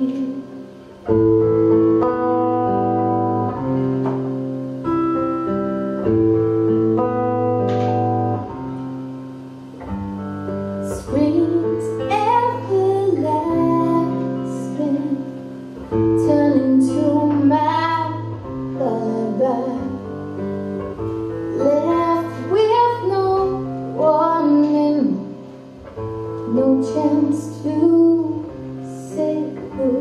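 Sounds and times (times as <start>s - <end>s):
woman singing: 0.0s - 0.8s, 10.8s - 20.1s, 21.5s - 25.4s, 26.4s - 30.0s
acoustic guitar chords: 0.0s - 30.0s.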